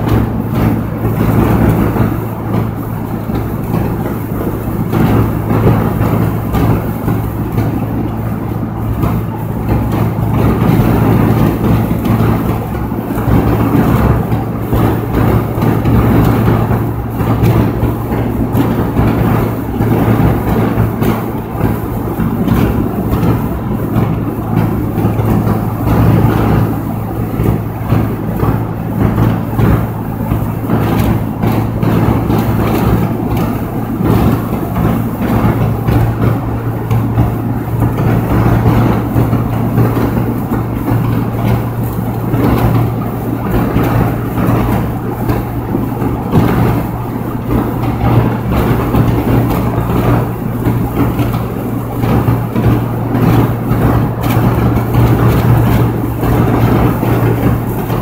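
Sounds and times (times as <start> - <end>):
low engine hum: 0.0 - 58.0
tyre and wind noise: 0.0 - 58.0.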